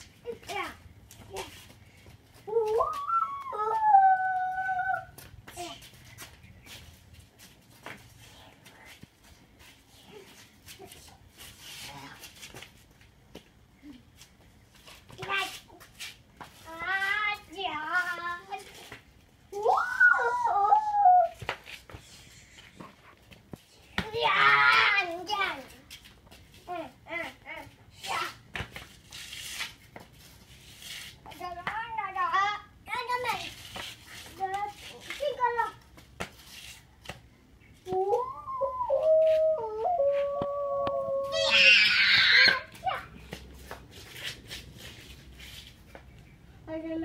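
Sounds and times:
long wavering howl: 0:02.5 - 0:05.1, 0:37.9 - 0:41.9.

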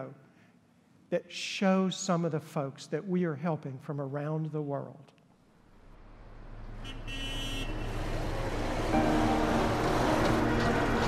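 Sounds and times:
city street traffic: 0:05.6 - 0:11.0
steady held tones: 0:05.8 - 0:11.0.

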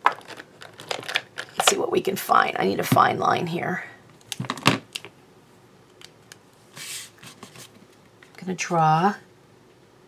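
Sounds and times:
hand rubbing across surface: 0:06.7 - 0:07.7.

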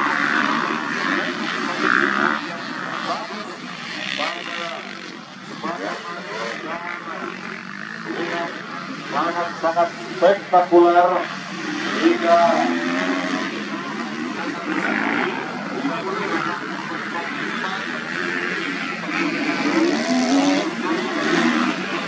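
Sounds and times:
motocross bike engines: 0:00.0 - 0:22.0.

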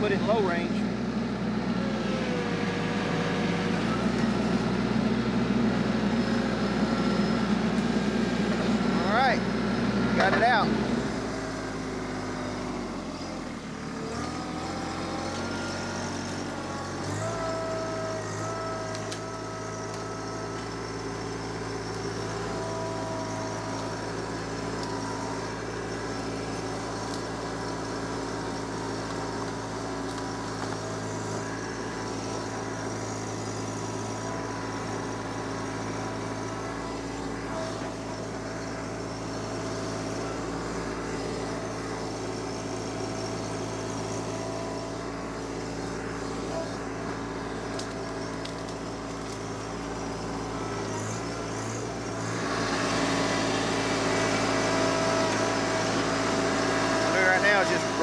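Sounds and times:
tractor engine labouring: 0:00.0 - 0:58.0.

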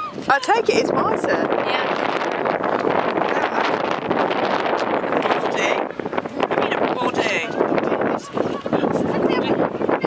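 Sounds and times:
wind blowing on microphone: 0:00.0 - 0:10.0.

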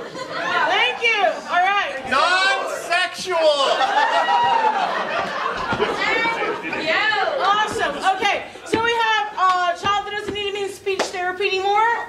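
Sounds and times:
voices chattering: 0:04.7 - 0:12.0.

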